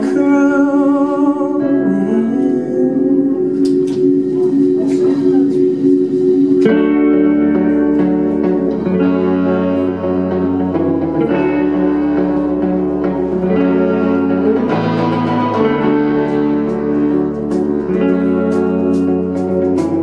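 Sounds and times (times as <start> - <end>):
electric guitar: 0.0 - 20.0
rock band playing live: 3.1 - 20.0.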